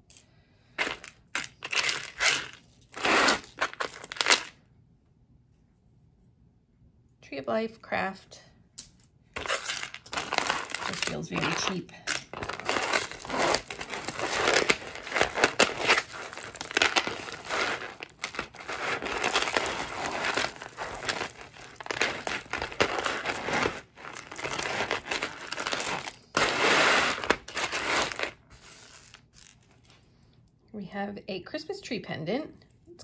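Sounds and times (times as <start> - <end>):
jewelry clinking and rattling: 0.8 - 2.7, 9.4 - 26.1.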